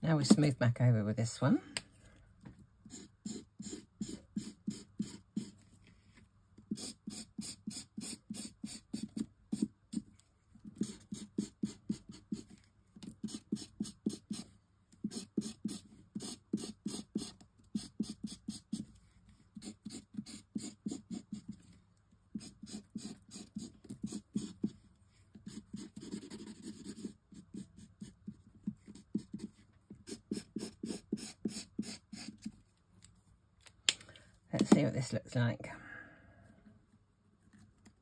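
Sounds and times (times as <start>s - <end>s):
marker rubbing on cardstock: 2.9s - 5.6s, 6.7s - 18.9s, 19.6s - 21.6s, 22.4s - 24.8s, 25.4s - 32.5s.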